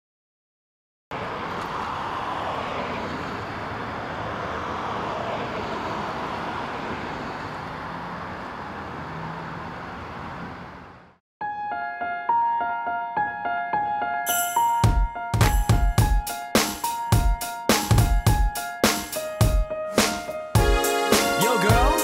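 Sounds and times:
road traffic rushing: 1.1 - 11.2.

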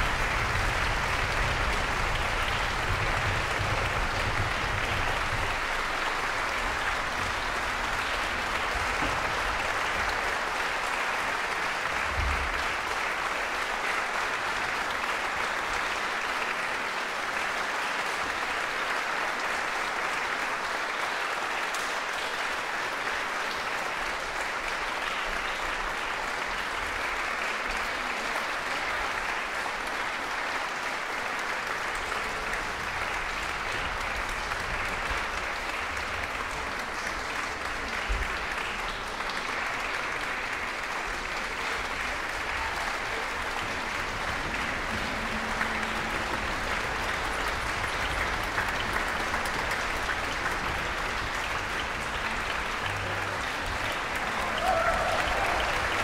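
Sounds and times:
audience applauding: 0.0 - 56.0.

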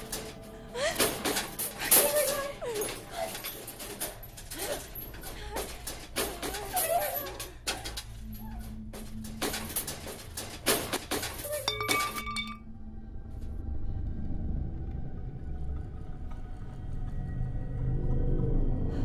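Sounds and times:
low ominous film score: 0.0 - 11.7, 12.6 - 19.0
metal cage bars clanking: 0.0 - 12.6.

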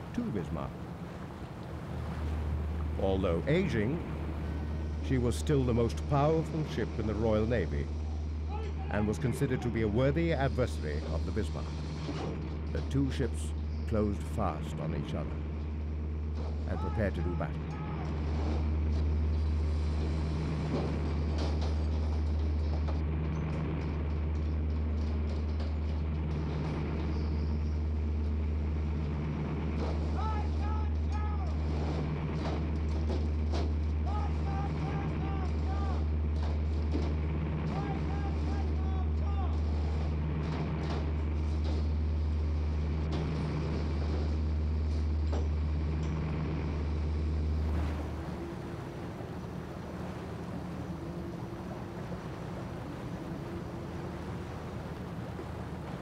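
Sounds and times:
ship engines throbbing: 0.0 - 56.0
faint calls: 47.6 - 56.0.

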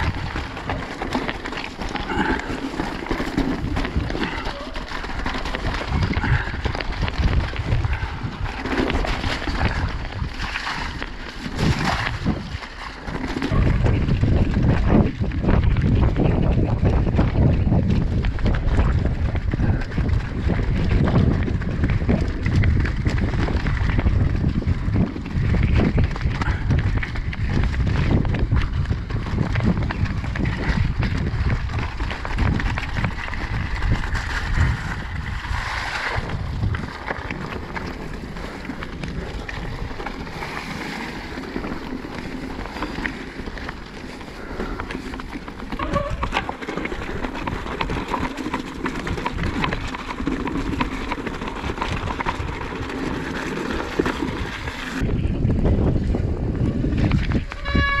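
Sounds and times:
rucksack strap flapping: 0.0 - 55.4
tyres crunching over stones: 0.0 - 55.4
mountain bike rattling: 0.0 - 58.0
wind buffeting microphone: 0.0 - 58.0.

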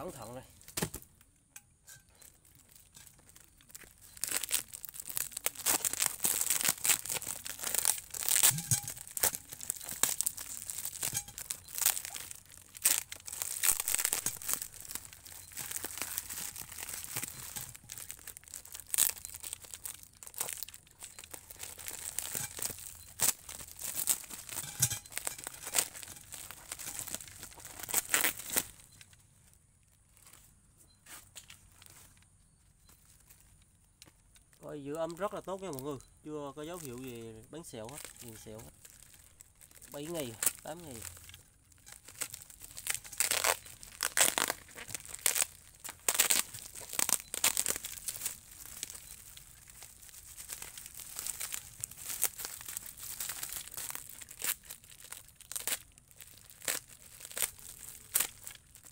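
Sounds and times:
plastic wrapping being cut and torn: 1.9 - 29.0, 36.6 - 58.9.

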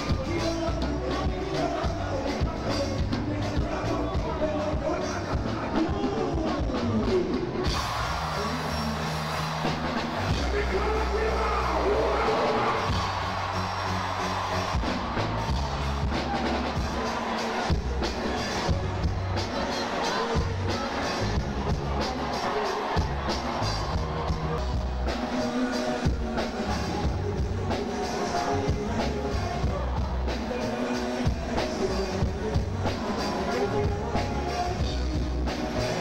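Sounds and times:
person singing: 0.0 - 9.1, 14.8 - 36.0
crowd noise: 0.0 - 36.0
drum beat: 0.0 - 36.0
deep bass notes: 17.7 - 19.5.

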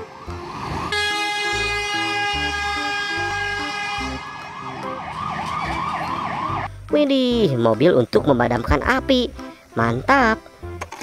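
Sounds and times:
fire engine siren yelping: 0.0 - 6.7
steady horn blast: 0.8 - 4.3.

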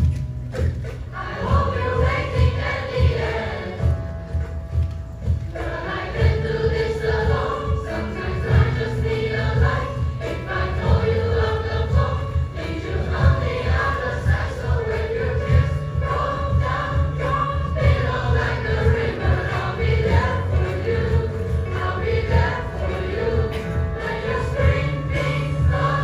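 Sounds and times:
mixed choir singing: 0.9 - 4.5, 5.2 - 26.0.

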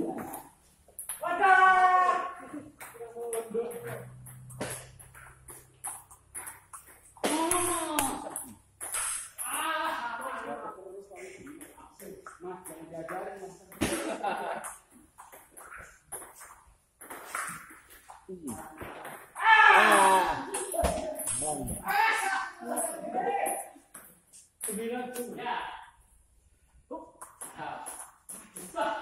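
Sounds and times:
man shouting loudly: 1.2 - 2.6, 9.4 - 10.7, 19.4 - 20.5
men talking and calling out: 9.4 - 14.6.

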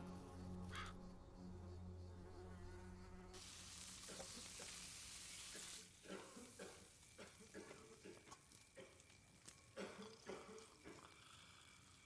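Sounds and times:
high steady hiss: 3.3 - 12.0
small fire crackling: 3.3 - 12.0.

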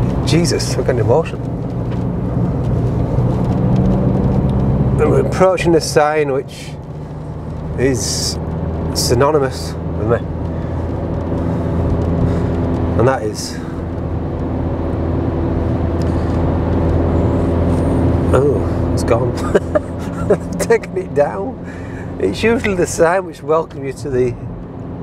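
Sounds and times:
car engine and road hum: 0.0 - 25.0.

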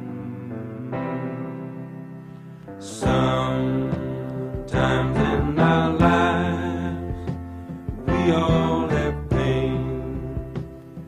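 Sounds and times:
background music sustained chords: 0.0 - 11.0.

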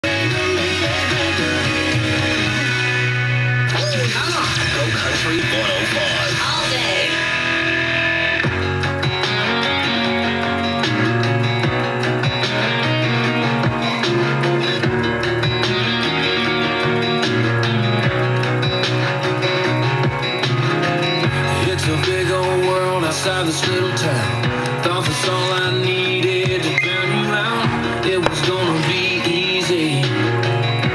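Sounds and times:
country music with guitar: 0.0 - 30.9
person speaking over music: 3.7 - 7.2.

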